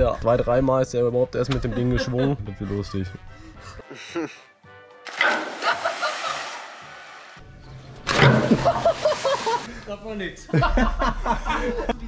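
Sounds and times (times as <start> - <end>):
background music: 0.0 - 12.0
splash into water: 5.1 - 7.4, 8.1 - 9.7.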